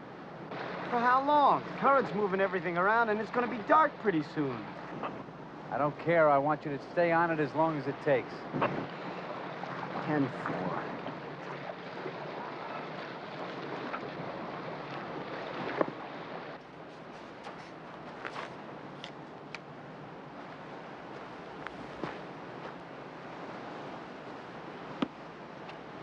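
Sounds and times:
wind and water on boat: 0.0 - 26.0
surf washing on beach: 0.4 - 19.0, 19.9 - 26.0.

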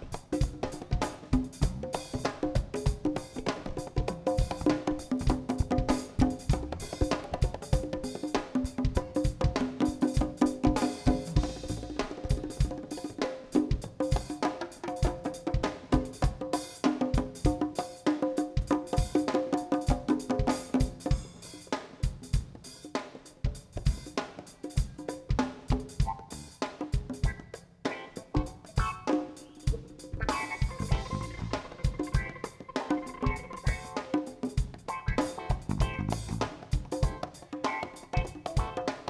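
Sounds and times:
live jazz band playing: 0.0 - 19.3, 24.6 - 39.0
drum kit and hand percussion: 0.0 - 39.0.

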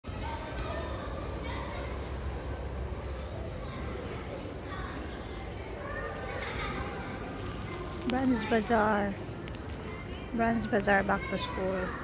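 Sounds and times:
children's voices: 0.0 - 12.0
shoppers chattering: 0.0 - 12.0.

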